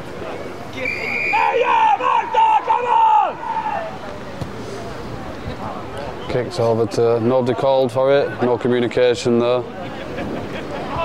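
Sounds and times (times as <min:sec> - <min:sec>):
people shouting high-pitched calls: 0:00.8 - 0:04.0.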